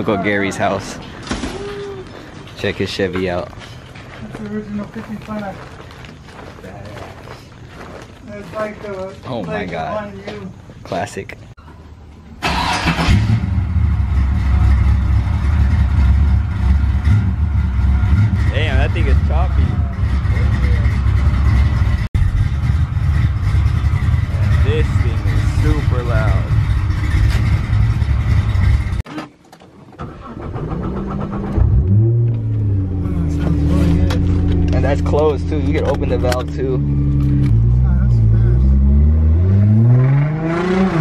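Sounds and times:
car engine rumbling: 0:11.8 - 0:41.0
car engine restarting: 0:12.4 - 0:29.0, 0:29.9 - 0:41.0.

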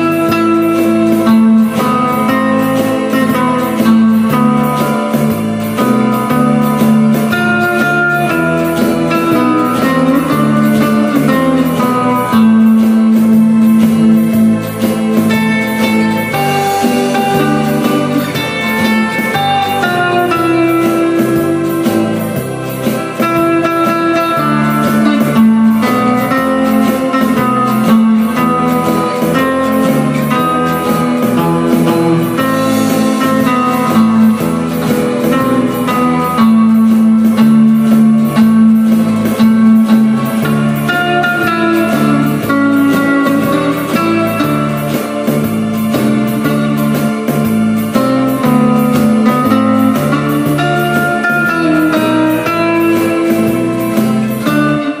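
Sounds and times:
bass: 0:00.0 - 0:55.0
electric guitar lead melody: 0:00.0 - 0:55.0
steady drum beat: 0:00.0 - 0:55.0.

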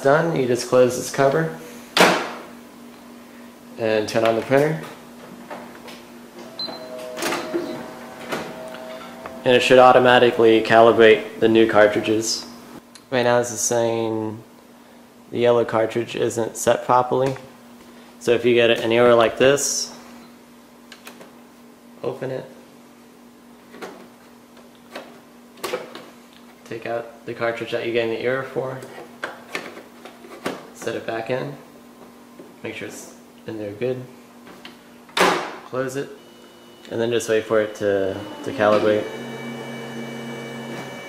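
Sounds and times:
copier motors humming: 0:03.6 - 0:12.8, 0:35.7 - 0:41.0.

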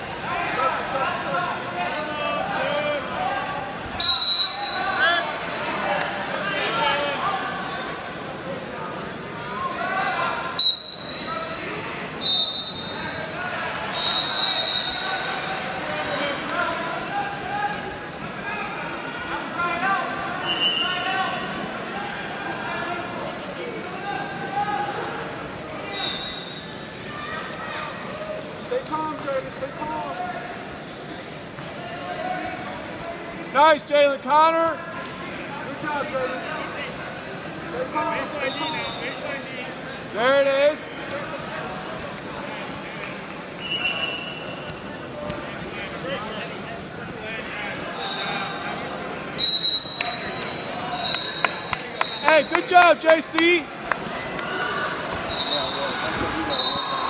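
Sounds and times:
echoing voices in gymnasium: 0:00.0 - 0:57.0
shrill referee's whistle blasts: 0:04.0 - 0:05.1, 0:10.6 - 0:11.3, 0:12.2 - 0:13.2, 0:14.0 - 0:15.1, 0:25.9 - 0:26.7, 0:38.4 - 0:39.2, 0:48.0 - 0:48.7, 0:49.4 - 0:52.6, 0:55.3 - 0:57.0.

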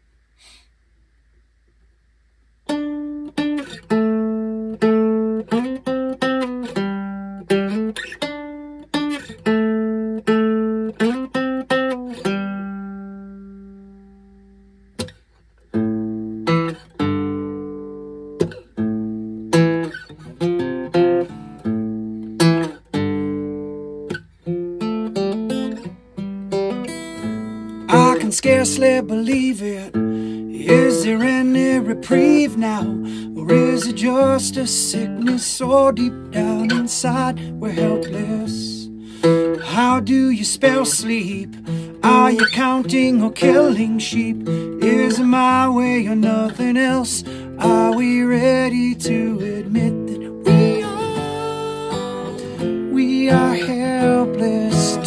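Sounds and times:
acoustic guitar picking: 0:02.6 - 0:55.0.

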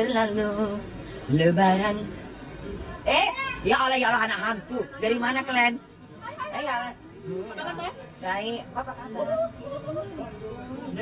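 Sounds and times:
people talking: 0:01.2 - 0:11.0.

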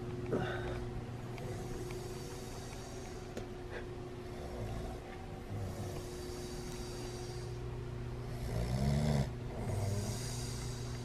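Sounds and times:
person snoring: 0:08.2 - 0:11.0.

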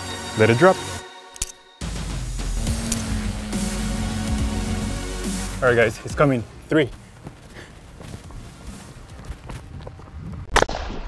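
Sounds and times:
wind rumbling on microphone: 0:08.2 - 0:10.5.

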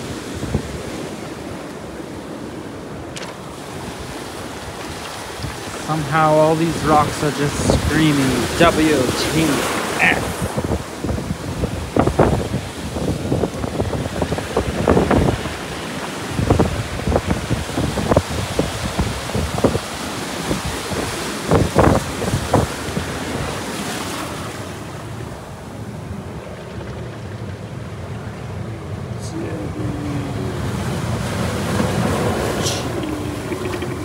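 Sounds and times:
wind on microphone: 0:00.0 - 0:28.2, 0:29.3 - 0:34.0
surf breaking on rocks: 0:00.0 - 0:34.0.

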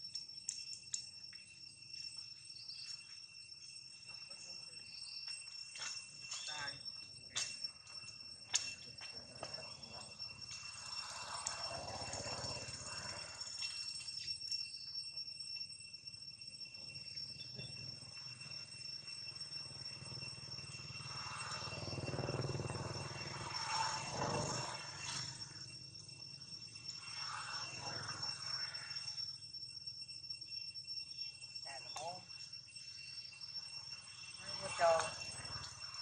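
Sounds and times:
insects droning: 0:00.0 - 0:36.0.

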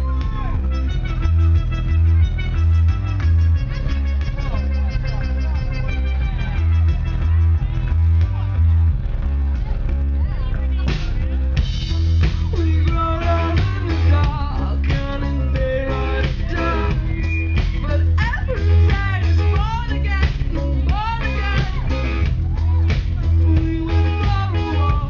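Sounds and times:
live band music: 0:00.0 - 0:25.0
woman singing into microphone: 0:17.8 - 0:22.0, 0:23.5 - 0:25.0.

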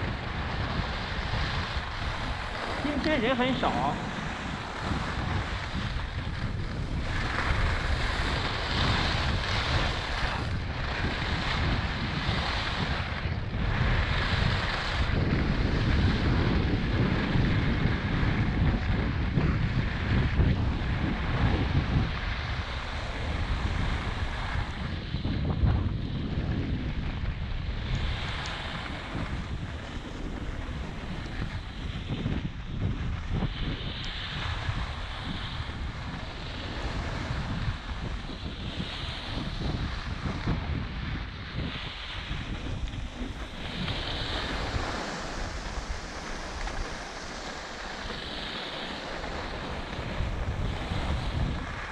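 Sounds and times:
skis scraping on packed snow: 0:00.0 - 0:19.0, 0:22.2 - 0:51.9
wind rushing over microphone: 0:00.0 - 0:51.9.

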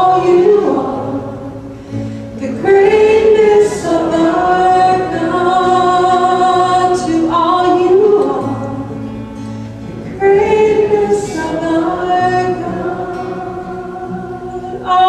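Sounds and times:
voices singing worship song: 0:00.0 - 0:09.0, 0:10.0 - 0:15.0.

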